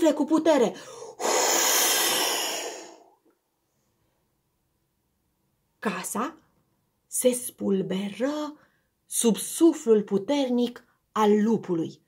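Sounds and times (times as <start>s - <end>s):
woman blowing through lips: 1.0s - 3.2s.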